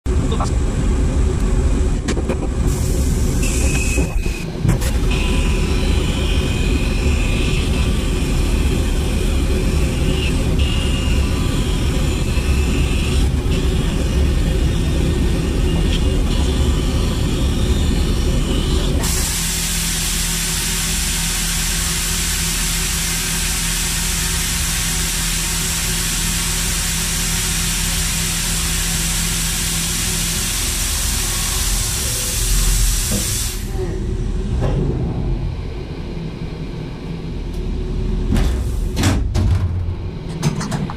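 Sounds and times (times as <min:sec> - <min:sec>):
compressed air hissing: 0:27.1 - 0:33.7.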